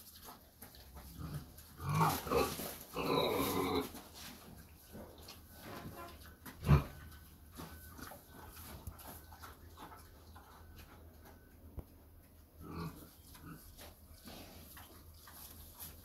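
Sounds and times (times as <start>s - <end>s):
pig rooting in straw: 0.0s - 16.0s
pig grunting: 1.0s - 4.0s, 6.5s - 7.2s, 12.6s - 14.8s.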